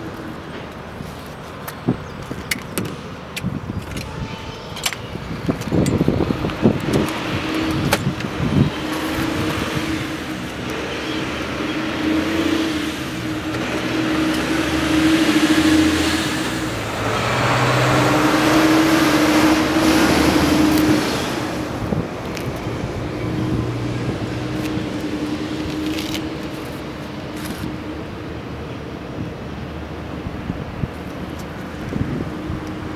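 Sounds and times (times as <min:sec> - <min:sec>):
rustling scraping noise: 0:00.1 - 0:03.1, 0:24.6 - 0:27.8
electric lift motor humming: 0:05.0 - 0:28.1.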